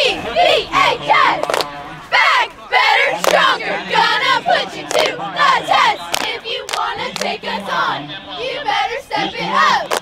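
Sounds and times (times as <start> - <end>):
sharp claps: 1.4 - 1.7, 4.9 - 5.2, 6.1 - 7.3.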